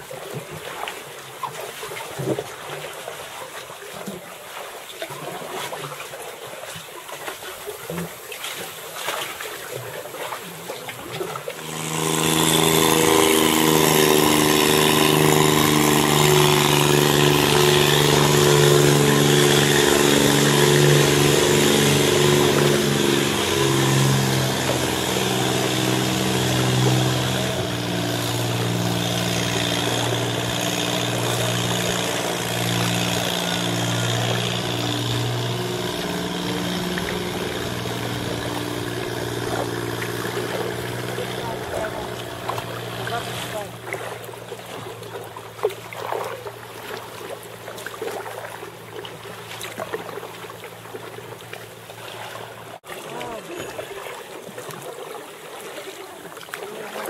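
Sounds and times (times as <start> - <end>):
boat engine droning: 7.3 - 57.0.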